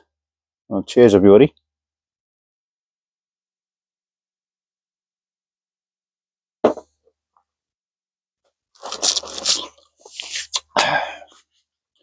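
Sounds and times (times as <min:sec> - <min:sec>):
man swallowing and breathing: 0:10.3 - 0:11.5.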